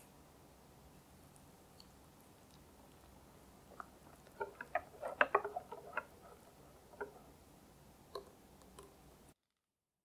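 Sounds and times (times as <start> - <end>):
whisk clicking against glass bowl: 4.2 - 7.2.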